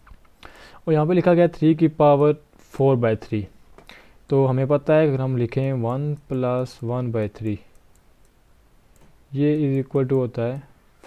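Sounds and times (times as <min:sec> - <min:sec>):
man speaking: 0:00.8 - 0:03.6, 0:04.3 - 0:07.7, 0:09.3 - 0:10.7.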